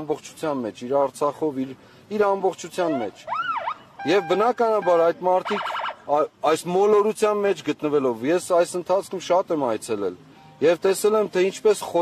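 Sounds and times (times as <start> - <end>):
man speaking: 0.0 - 3.3, 4.0 - 12.0
siren-like electronic tone: 3.3 - 6.0.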